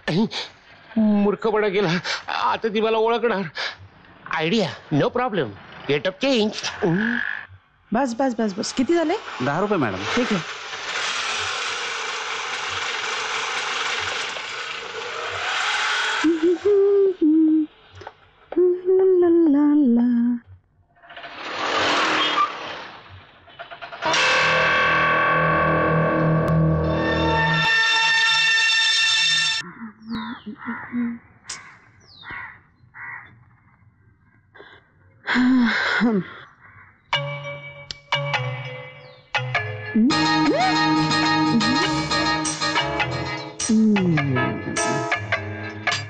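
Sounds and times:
auto-rickshaw engine running: 8.0 - 16.8
woman humming: 16.2 - 17.8, 18.5 - 20.5, 29.6 - 31.2, 35.3 - 36.4, 40.0 - 42.4, 43.6 - 45.0
crow cawing: 29.6 - 33.4, 36.6 - 37.0.

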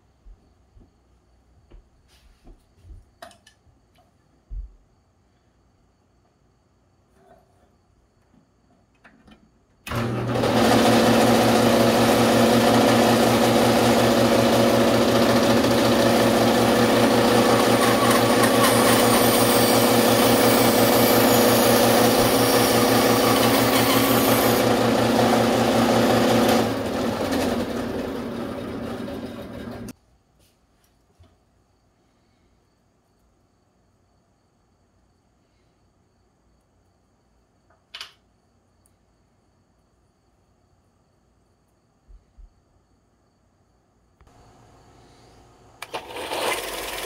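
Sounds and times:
power saw running: 9.9 - 29.9, 45.8 - 47.0.

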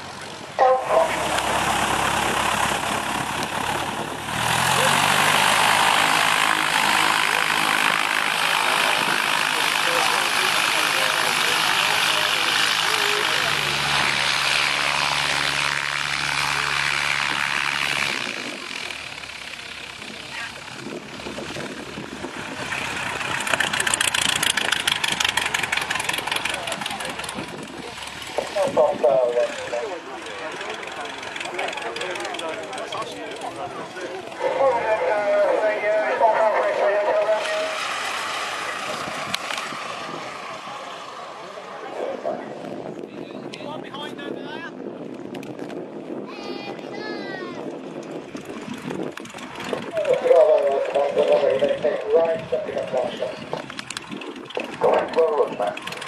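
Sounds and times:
aircraft engine and propeller rush: 0.0 - 56.0
light aircraft engine running: 0.0 - 56.0.

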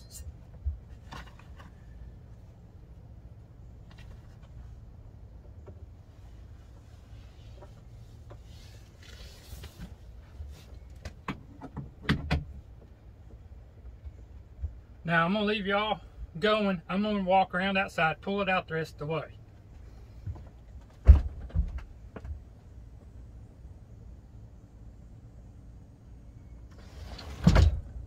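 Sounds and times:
low steady hum: 0.0 - 28.0.

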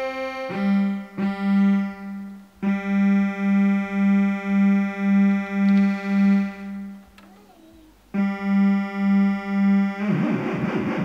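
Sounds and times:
buzzy synthesizer note: 0.0 - 7.1, 8.2 - 11.0.

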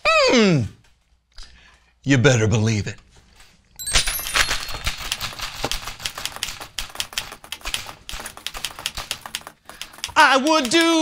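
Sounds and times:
typewriter keys clicking: 4.2 - 11.0.

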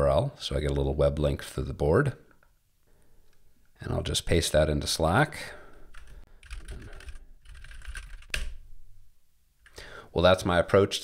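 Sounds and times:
typing on computer keyboard: 5.9 - 8.6.

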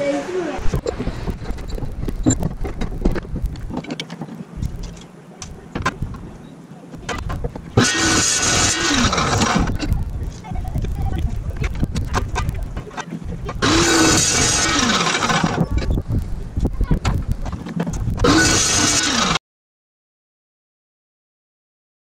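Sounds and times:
clicks and handling knocks: 0.7 - 6.3
chop saw cutting steel: 7.8 - 9.8, 13.6 - 15.6, 18.2 - 19.4.

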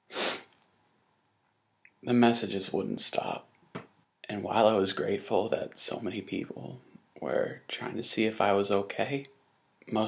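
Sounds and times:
sharp breath through nose: 0.0 - 0.6.

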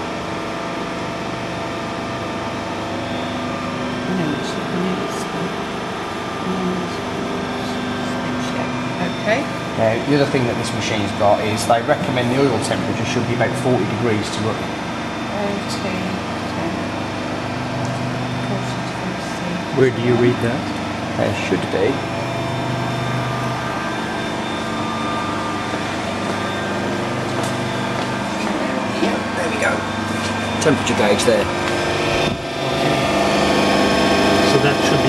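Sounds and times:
hydraulic pump motor humming: 0.0 - 35.0.

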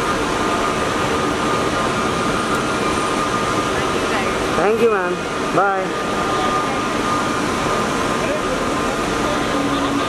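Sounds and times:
constant loud roar: 0.0 - 10.0.

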